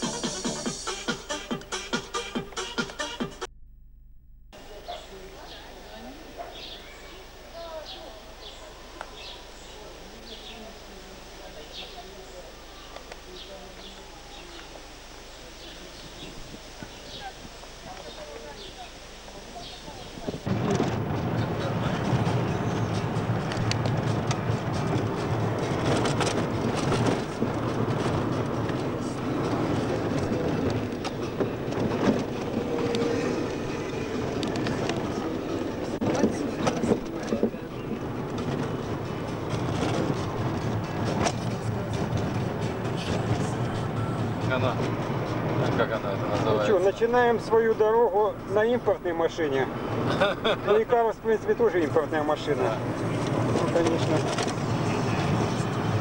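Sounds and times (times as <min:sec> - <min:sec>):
indistinct voices: 0:04.6 - 0:50.2
car road and engine noise: 0:04.6 - 0:56.0.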